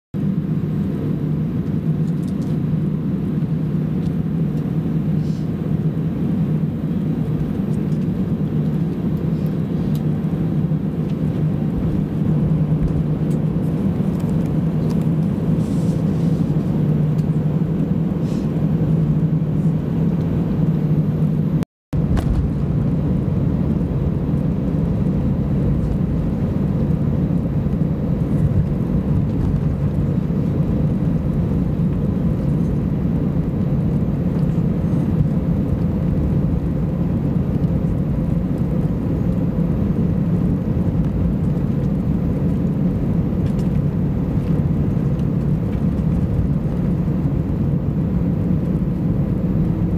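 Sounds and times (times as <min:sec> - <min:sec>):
jet engines idling drone: 0:00.2 - 0:49.9.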